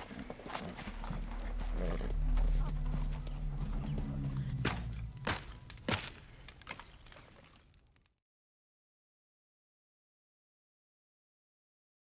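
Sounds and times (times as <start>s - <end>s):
horse hooves clopping: 0.0s - 7.8s
steady low rumble: 0.2s - 6.6s.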